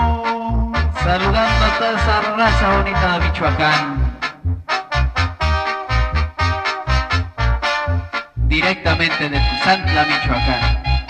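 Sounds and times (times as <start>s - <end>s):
band playing short separated notes: 0.0s - 11.0s
steady bass beat: 0.0s - 11.0s.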